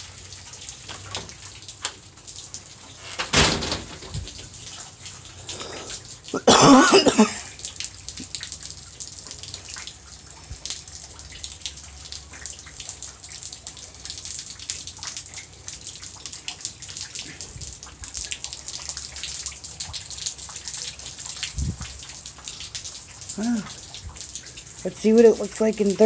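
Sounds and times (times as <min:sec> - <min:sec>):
wet snow dripping and pattering: 0:04.0 - 0:26.0.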